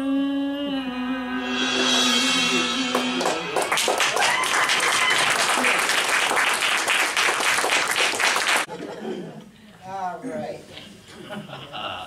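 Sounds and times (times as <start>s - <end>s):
singer holding a note: 0.0s - 5.0s
audience applauding: 3.2s - 8.7s.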